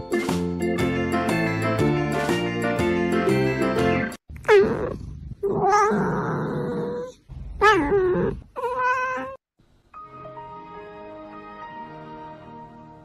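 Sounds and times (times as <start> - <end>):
background music: 0.0 - 4.2, 9.9 - 13.0
cat meowing: 6.9 - 9.4.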